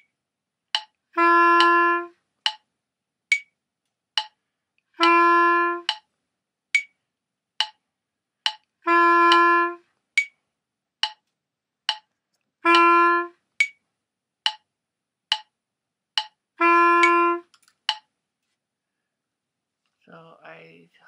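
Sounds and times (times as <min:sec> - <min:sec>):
metronome clicking: 0:00.7 - 0:02.7, 0:03.3 - 0:03.6, 0:04.2 - 0:04.4, 0:05.0 - 0:06.1, 0:06.8 - 0:07.0, 0:07.6 - 0:07.8, 0:08.4 - 0:10.4, 0:11.0 - 0:11.3, 0:11.9 - 0:12.1, 0:12.7 - 0:13.8, 0:14.4 - 0:14.7, 0:15.3 - 0:15.5, 0:16.2 - 0:18.1
wind instrument held notes: 0:01.2 - 0:02.2, 0:05.0 - 0:06.0, 0:08.9 - 0:09.8, 0:12.6 - 0:13.4, 0:16.6 - 0:17.5.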